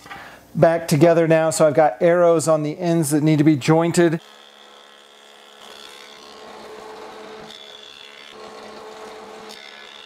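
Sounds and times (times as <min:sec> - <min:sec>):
jointer cutting wood: 0:04.0 - 0:10.0.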